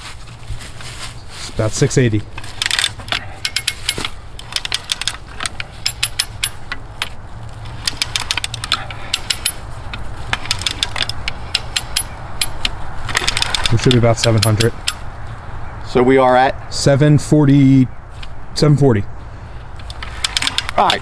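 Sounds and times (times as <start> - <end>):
winch ratchet clicking: 2.4 - 15.0, 19.6 - 21.0.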